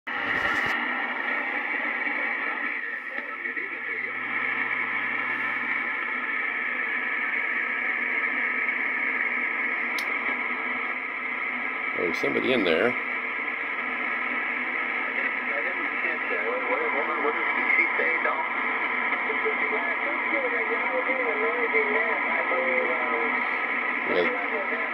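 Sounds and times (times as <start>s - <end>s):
faint voice on radio: 0.1s - 7.8s, 14.4s - 24.9s
radio static and hiss: 0.1s - 24.9s.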